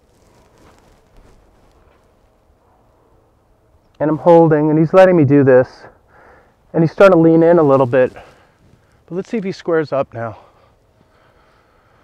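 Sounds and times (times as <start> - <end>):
light rustle: 0.0 - 4.5, 6.9 - 11.7.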